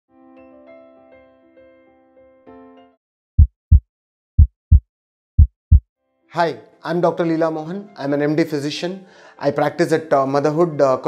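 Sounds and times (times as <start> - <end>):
heartbeat thumps: 3.4 - 5.8.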